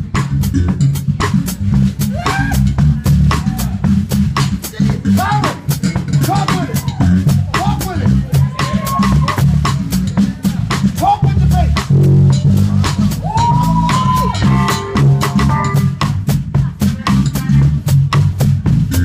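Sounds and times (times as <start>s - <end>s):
drum kit playing: 0.0s - 19.0s
electric bass line: 0.0s - 19.0s.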